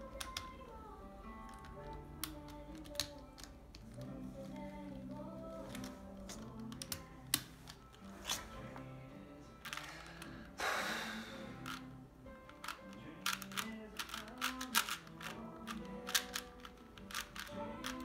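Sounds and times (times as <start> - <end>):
quiet background music: 0.0 - 18.0
puzzle cube clicking: 1.4 - 4.2, 5.7 - 8.4, 9.6 - 10.4, 11.4 - 18.0.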